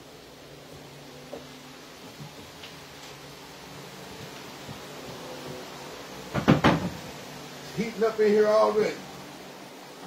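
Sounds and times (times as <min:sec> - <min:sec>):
low steady hum: 0:00.0 - 0:10.0
fan clattering on floor: 0:06.1 - 0:07.2.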